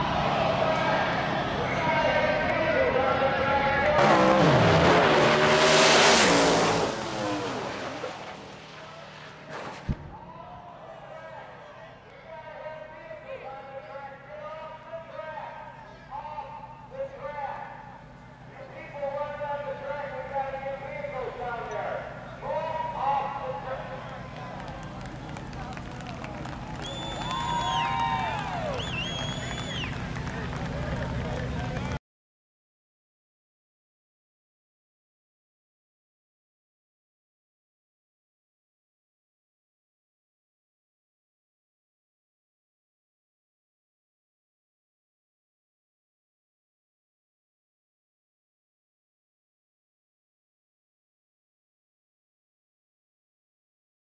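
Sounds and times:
drag race cars at full throttle: 0:00.0 - 0:32.0.

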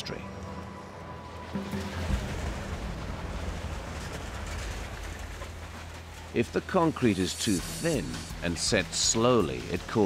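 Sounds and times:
background music: 0:00.0 - 0:10.0
concrete pump rumbling: 0:01.3 - 0:10.0.

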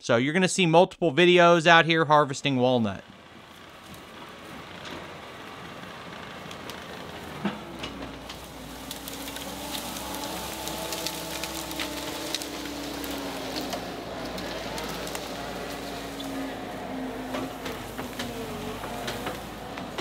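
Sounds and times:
diesel engine running: 0:02.8 - 0:20.0
brush and branches snapping: 0:03.4 - 0:20.0.

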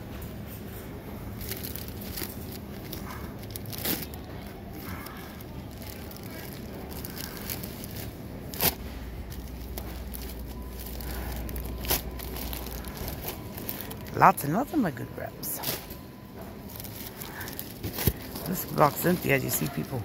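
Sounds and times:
supermarket background noise: 0:00.0 - 0:20.0
low rumble: 0:01.2 - 0:14.2.

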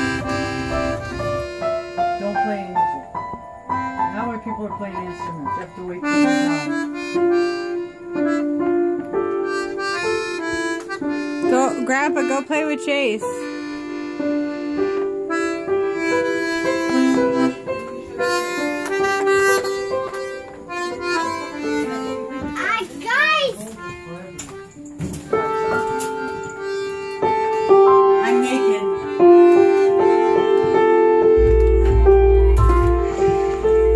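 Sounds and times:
low rumble: 0:00.0 - 0:01.8, 0:31.4 - 0:33.9
accordion playing a tune: 0:00.0 - 0:33.9.

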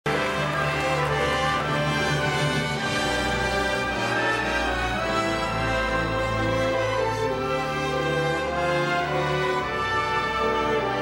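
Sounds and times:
orchestra playing sustained chords: 0:00.1 - 0:11.0.

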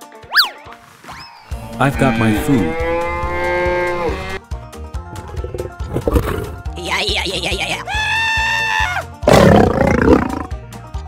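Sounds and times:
background music: 0:00.0 - 0:11.0
lion roaring: 0:05.1 - 0:06.8, 0:09.2 - 0:10.6.

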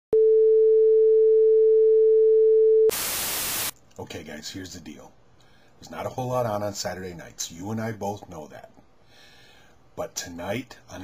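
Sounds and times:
tv static hiss: 0:02.9 - 0:03.8.

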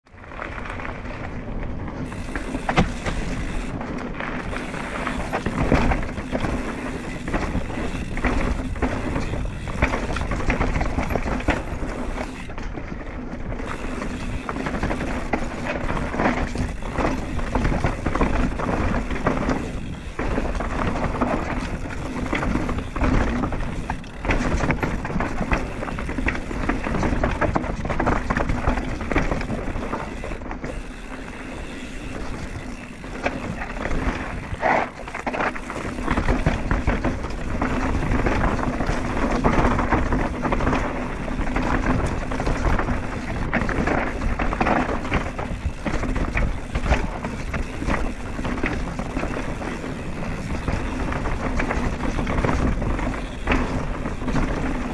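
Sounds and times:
rush of tyres and wind: 0:00.0 - 0:54.9
bike clattering knocks: 0:02.0 - 0:12.8.

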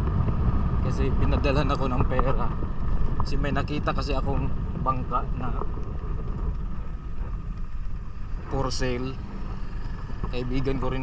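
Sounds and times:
motorcycle engine rumble: 0:00.0 - 0:11.0
wind buffeting microphone: 0:00.0 - 0:11.0.

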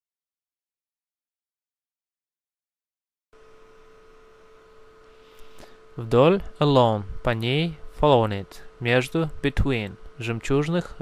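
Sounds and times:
faint electrical hum and hiss: 0:03.4 - 0:11.0.

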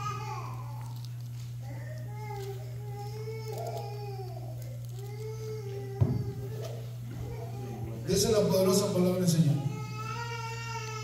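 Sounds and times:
soft wavering whining cry: 0:00.0 - 0:08.1, 0:09.4 - 0:11.0
steady low hum: 0:00.0 - 0:11.0.

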